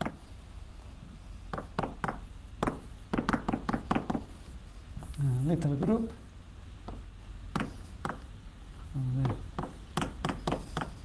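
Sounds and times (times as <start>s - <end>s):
chalk tapping on blackboard: 0.0s - 0.3s, 1.4s - 6.1s, 6.8s - 8.4s, 9.2s - 11.0s.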